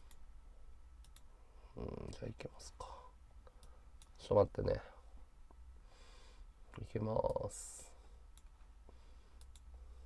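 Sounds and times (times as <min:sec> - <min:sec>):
computer mouse clicks: 0:01.0 - 0:01.3, 0:03.4 - 0:04.2, 0:09.4 - 0:09.8.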